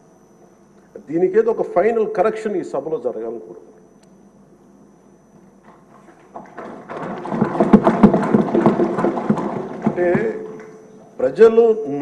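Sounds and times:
people thumping desks: 5.6s - 11.2s.

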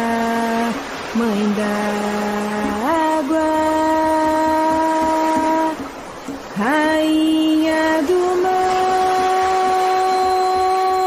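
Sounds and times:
person singing a chant: 0.0s - 5.8s, 6.5s - 11.0s.

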